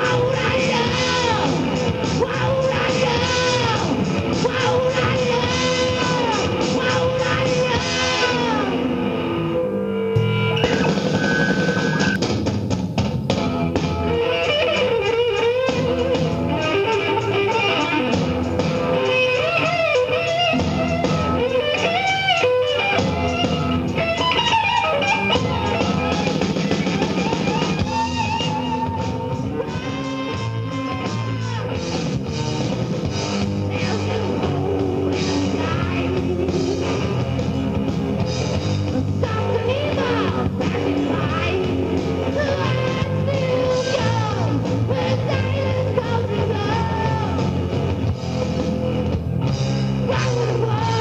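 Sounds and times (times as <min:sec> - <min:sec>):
electric guitar lead with bends: 0:00.0 - 0:51.0
hard rock band playing live: 0:00.0 - 0:51.0.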